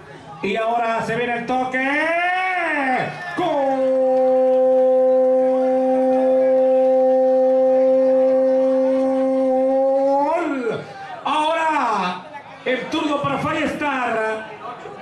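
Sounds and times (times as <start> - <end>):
man shouting long drawn-out: 1.8 - 11.7.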